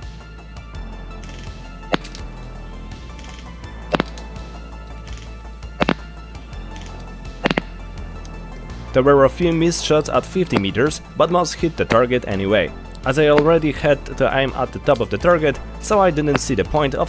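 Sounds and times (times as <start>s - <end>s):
background music: 0.0s - 17.0s
airsoft gun shots: 1.4s - 2.3s, 3.9s - 4.2s, 5.1s - 6.2s, 7.4s - 7.8s.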